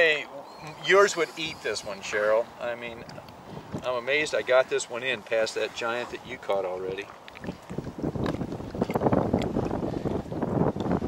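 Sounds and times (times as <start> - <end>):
wind buffeting microphone: 0.3 - 11.0.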